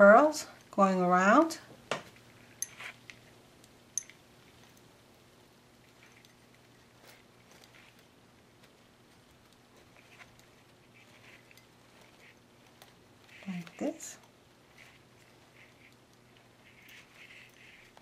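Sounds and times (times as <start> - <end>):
low steady hum: 0.0 - 18.0
soft rustles: 5.7 - 18.0.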